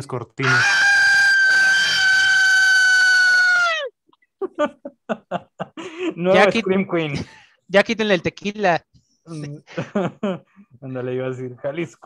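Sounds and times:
person shrieking in falsetto: 0:00.4 - 0:04.0.

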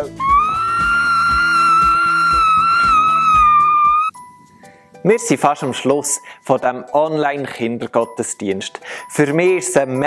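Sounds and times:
background music with beat: 0:00.0 - 0:10.0.

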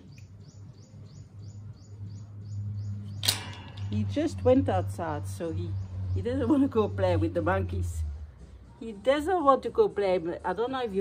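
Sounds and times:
bird chirping: 0:00.0 - 0:07.3.

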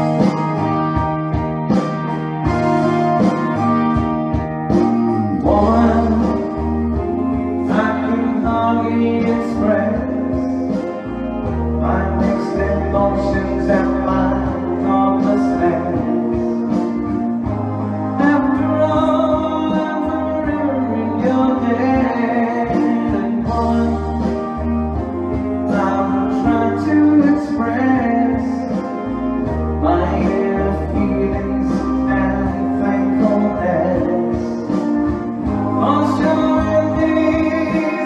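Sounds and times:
backing track music: 0:00.0 - 0:38.0
man singing pop song: 0:04.5 - 0:38.0.

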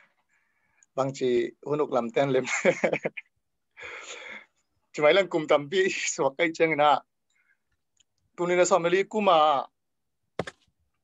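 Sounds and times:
man speaking: 0:01.0 - 0:02.7, 0:04.9 - 0:07.1.

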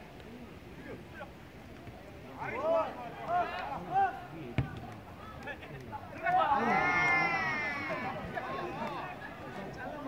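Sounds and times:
people shouting: 0:06.2 - 0:09.1.

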